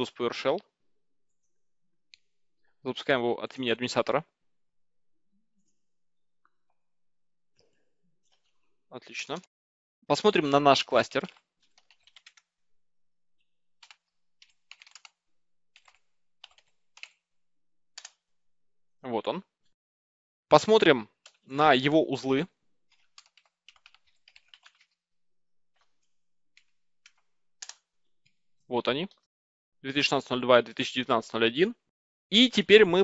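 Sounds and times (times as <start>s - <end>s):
keyboard typing: 11.2s - 12.5s, 13.8s - 17.2s, 18.0s - 18.2s, 22.9s - 25.0s, 26.6s - 27.8s.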